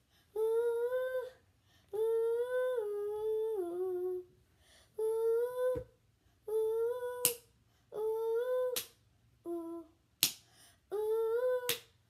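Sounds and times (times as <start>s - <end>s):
girl singing long notes: 0.3s - 10.0s, 10.9s - 12.0s.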